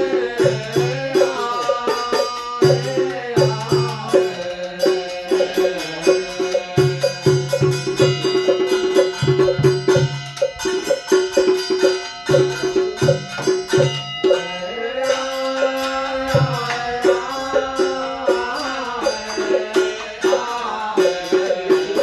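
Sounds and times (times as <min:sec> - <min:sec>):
drum and wood block strikes: 0:00.0 - 0:22.0
sustained pitched melody: 0:00.0 - 0:22.0.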